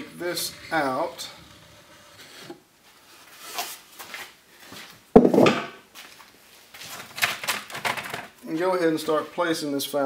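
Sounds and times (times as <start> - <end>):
wood rubbing and scraping: 0.0 - 4.3
loud wooden knock: 5.2 - 5.8.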